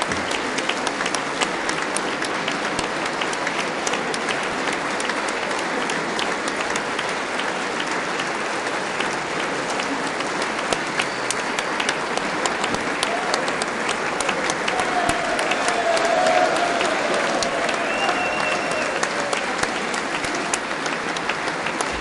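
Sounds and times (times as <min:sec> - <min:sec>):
audience clapping: 0:00.0 - 0:22.0.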